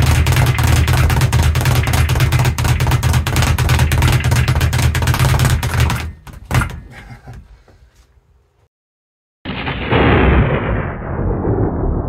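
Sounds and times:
explosion boom with rumble: 9.5 - 12.0.

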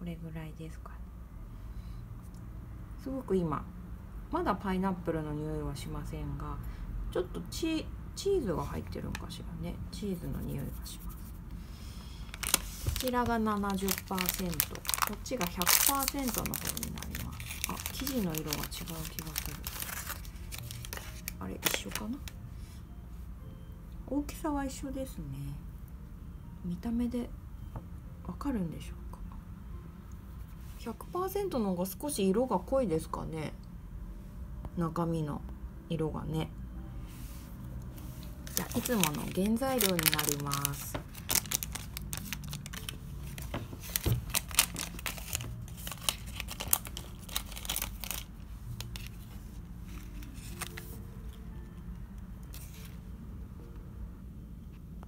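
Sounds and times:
plastic packaging crinkling: 12.2 - 22.4, 38.4 - 51.4.

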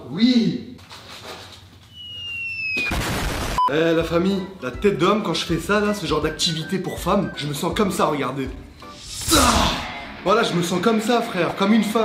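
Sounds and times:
falling bomb whistle: 1.9 - 3.6.

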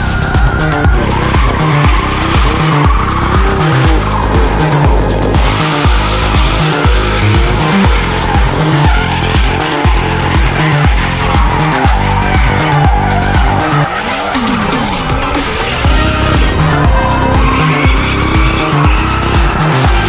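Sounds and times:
background music with steady beat: 0.0 - 20.0
car engine: 0.0 - 20.0
tyres squealing: 0.0 - 20.0.

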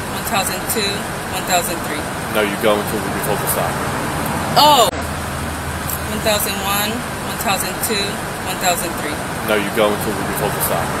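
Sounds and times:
low engine hum: 0.0 - 11.0
roadside traffic: 0.0 - 11.0.

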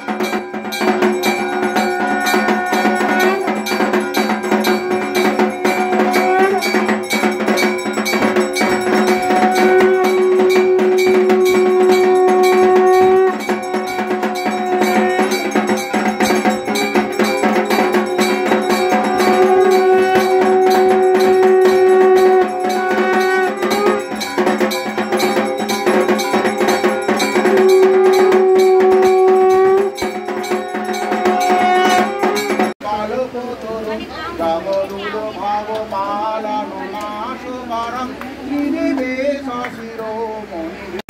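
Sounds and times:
temple bells clanging rapidly: 0.0 - 32.8.

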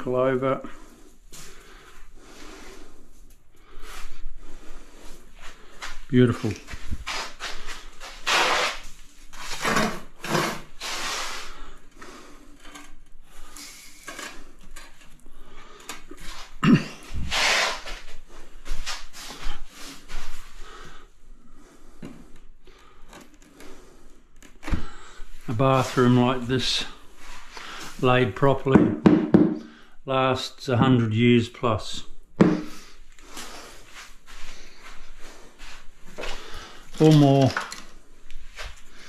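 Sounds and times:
trowel scraping wet mortar: 8.2 - 8.8.

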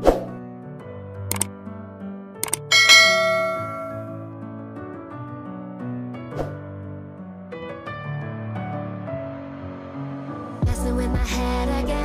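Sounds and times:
soft background music: 0.0 - 12.0
quick clicks: 2.4 - 2.7
bright notification bell ding: 2.4 - 4.2.

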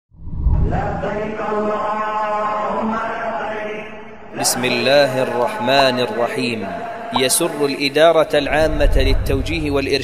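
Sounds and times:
voice chanting long notes: 7.1 - 7.8.

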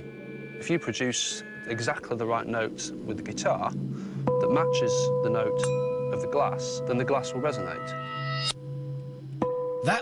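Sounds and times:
wine glass ringing note: 4.3 - 9.8.

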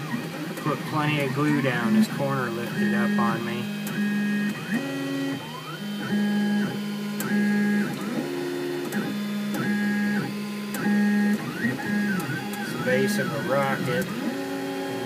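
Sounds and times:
printer stepper motors whining: 0.0 - 15.0.

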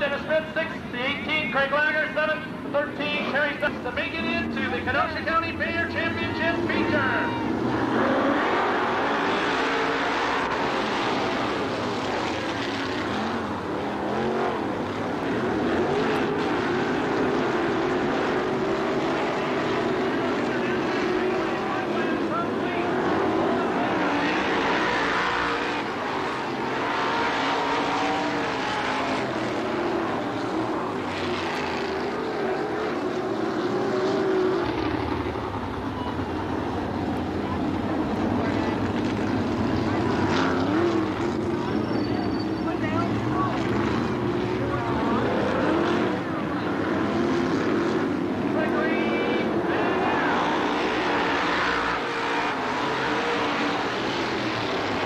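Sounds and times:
racing car engines: 0.0 - 55.0.

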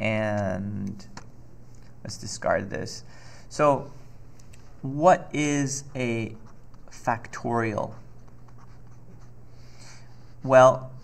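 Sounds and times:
stylus scratching on tablet: 6.0 - 9.4.

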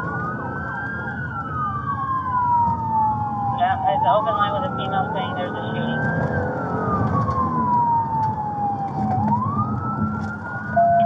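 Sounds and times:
engine and road rumble: 0.0 - 11.0
police siren wailing: 0.0 - 11.0.

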